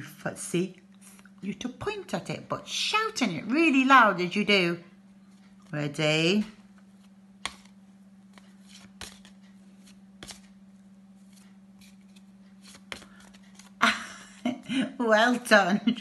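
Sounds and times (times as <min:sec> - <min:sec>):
steady low hum: 0:00.0 - 0:16.0
flashcards slapping clicks: 0:07.0 - 0:10.6, 0:11.2 - 0:13.8.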